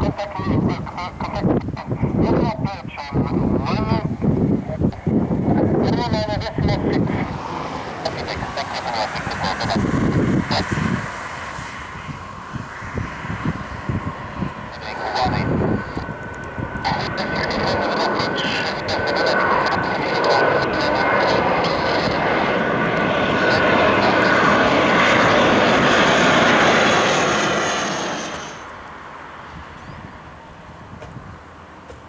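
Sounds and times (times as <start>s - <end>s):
jet roar with high whine: 0.0s - 32.0s.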